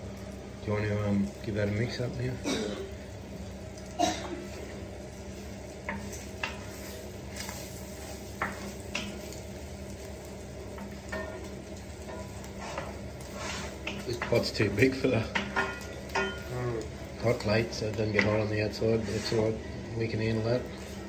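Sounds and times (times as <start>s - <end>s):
bacon and egg sizzling in a pan: 0.0s - 21.0s.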